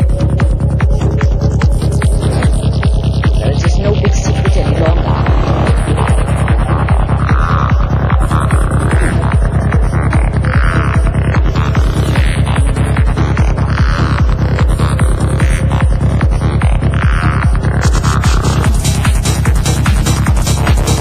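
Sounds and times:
swirling synth swells: 0.0 - 13.8
psytrance kick drum beat: 0.0 - 21.0
throbbing bassline: 0.0 - 21.0.

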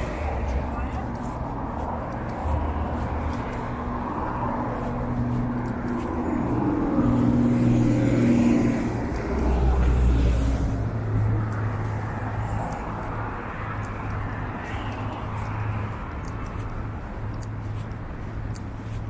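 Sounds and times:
bus and truck passing: 0.0 - 19.0
traffic passing: 0.0 - 19.0.

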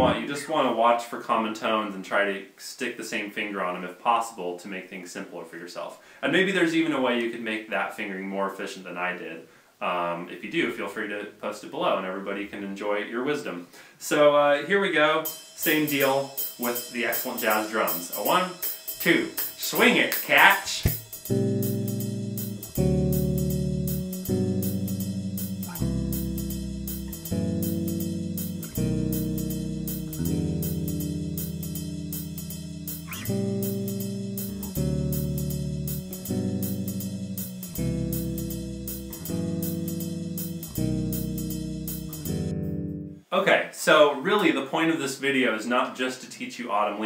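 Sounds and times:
electric bass guitar chords: 0.0 - 0.2, 20.7 - 43.2
swung jazz drum backing: 0.0 - 0.2, 15.2 - 42.6
cymbal strokes: 15.2 - 22.8, 24.9 - 27.3.

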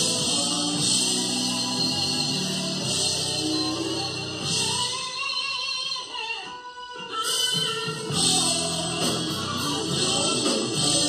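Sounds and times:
women singing gospel: 0.0 - 6.1, 7.0 - 11.0
band with drums and guitar: 0.0 - 11.0.

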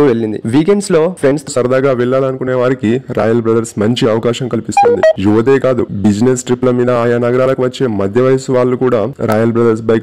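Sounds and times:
short electronic beeps: 4.8 - 5.2.

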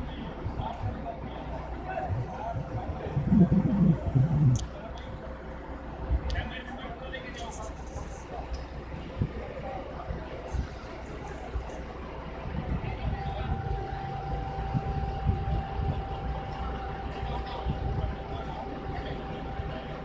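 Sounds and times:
thin steady whine: 0.0 - 4.9, 12.8 - 20.0.

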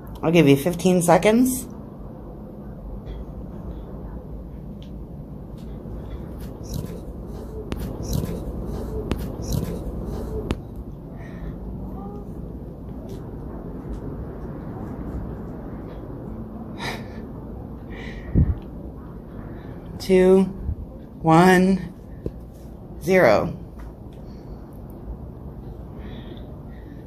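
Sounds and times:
low room hum: 0.0 - 27.0.

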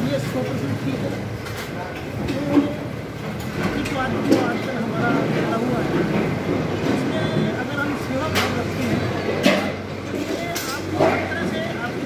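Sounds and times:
man speaking into microphone: 0.0 - 1.3, 3.6 - 9.5, 10.1 - 12.0.

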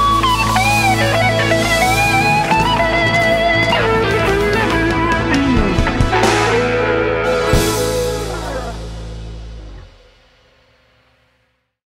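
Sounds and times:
rock band final chord: 0.0 - 11.0.

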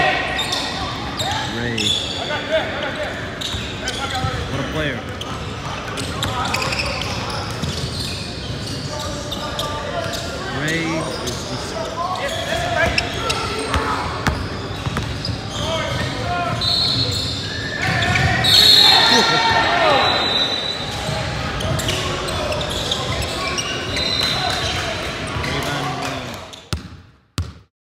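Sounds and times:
people shouting and chattering: 0.0 - 26.7
basketball bouncing on hardwood: 26.7 - 27.6.

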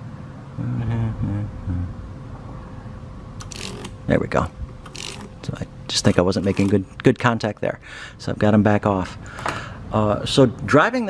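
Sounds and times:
man murmuring: 0.6 - 2.0.

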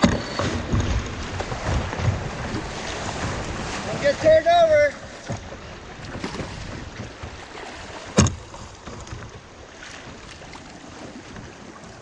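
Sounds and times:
sharp knocks on kayak: 0.0 - 3.9, 5.1 - 10.2.

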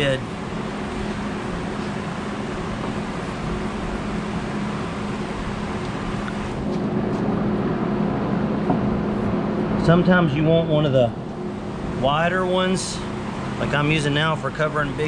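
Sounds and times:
machine hum with rushing noise: 0.0 - 15.0.

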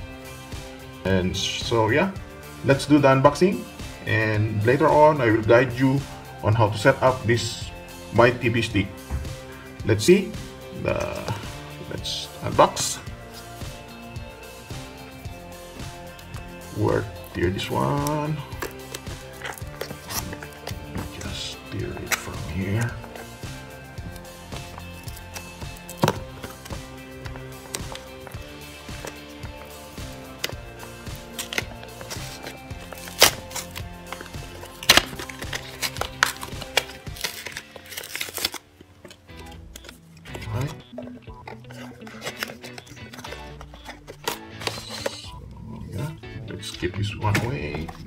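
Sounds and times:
background music: 0.0 - 48.0
paper seal tearing: 18.0 - 23.3, 30.3 - 40.9, 41.5 - 45.2.

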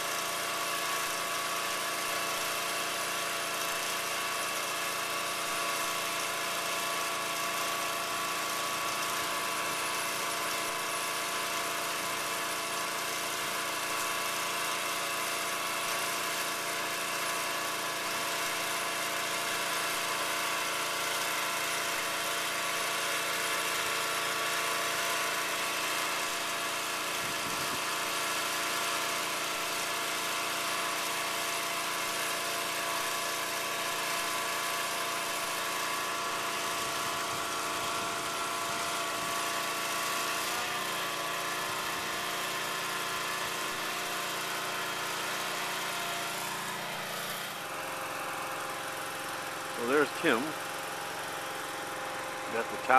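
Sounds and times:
small winch engine running: 0.0 - 52.9.

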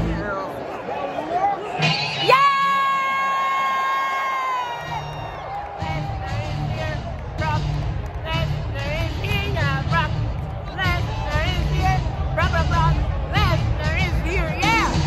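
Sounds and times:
arena crowd cheering: 0.0 - 15.0
loud music with heavy beat: 5.7 - 15.0.

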